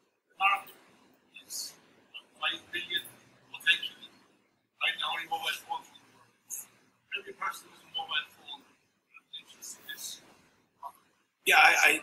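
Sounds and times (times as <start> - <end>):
soft indistinct speech: 0.4 - 0.8, 1.4 - 4.2, 4.8 - 12.0.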